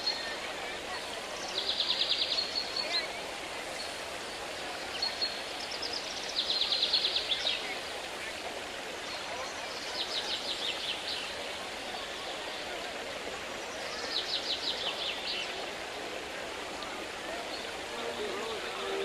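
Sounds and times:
murmur of distant voices: 0.0s - 19.0s.

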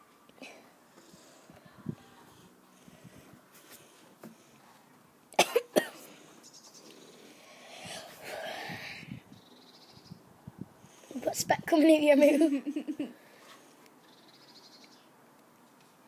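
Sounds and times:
girl coughing: 5.4s - 6.1s.

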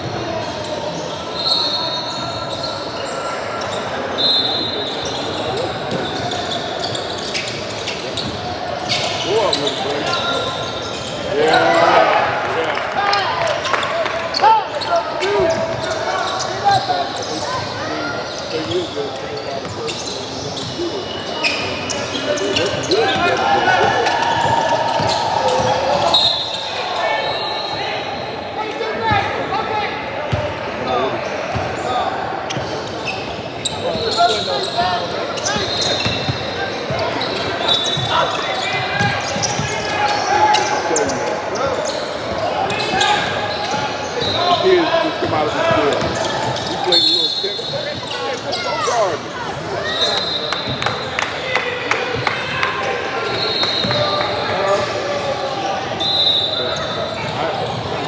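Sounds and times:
sneakers squeaking: 0.0s - 12.1s, 13.1s - 51.3s, 52.1s - 58.0s.

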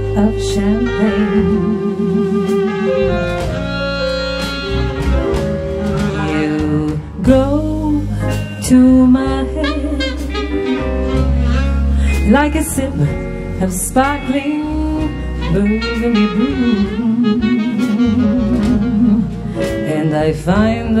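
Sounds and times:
jazz band playing slow ballad: 0.0s - 21.0s.

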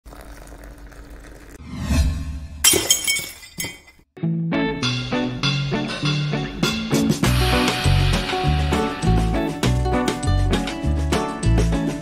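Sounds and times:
rising whoosh: 1.6s - 2.6s
glass shattering: 2.6s - 4.0s.

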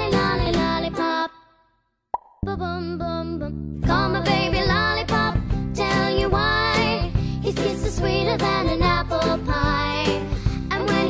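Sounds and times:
backing music with vocal harmonies: 0.0s - 1.7s, 2.4s - 11.0s
mouth pop: 2.1s - 2.5s.

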